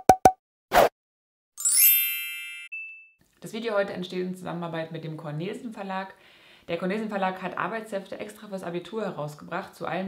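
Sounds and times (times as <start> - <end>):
shimmering chime: 1.6 - 3.1.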